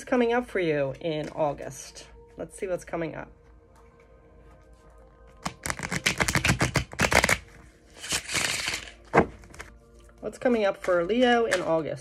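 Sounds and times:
faint background music: 0.0s - 12.0s
cards being shuffled: 5.4s - 9.8s
cards sliding rustle: 8.0s - 9.8s.

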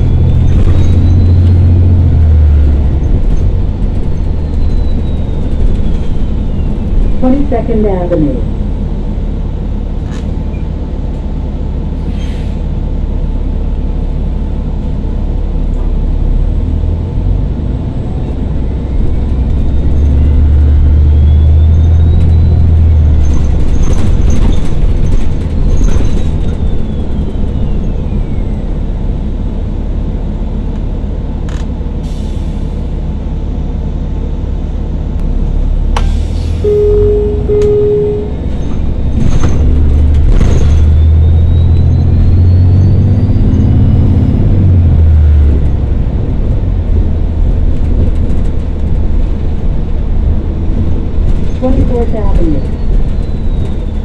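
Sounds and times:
bus engine rumbling: 0.0s - 54.0s
rattles and clicks: 23.0s - 27.7s, 46.8s - 54.0s
short beeps: 36.6s - 38.8s.

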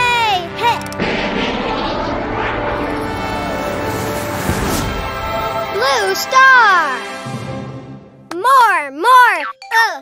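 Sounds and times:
cartoon engine-like rushing sound: 1.0s - 6.1s.

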